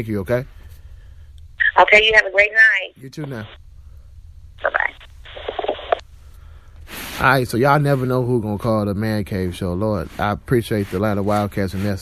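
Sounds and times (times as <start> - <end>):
low steady hum: 0.0 - 11.8
muffled telephone line audio: 1.6 - 3.6, 4.6 - 6.0.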